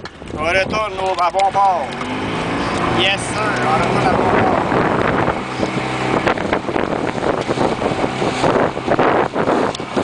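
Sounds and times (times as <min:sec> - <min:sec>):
outboard motor running: 0:00.0 - 0:10.0
wind buffeting microphone: 0:00.0 - 0:10.0.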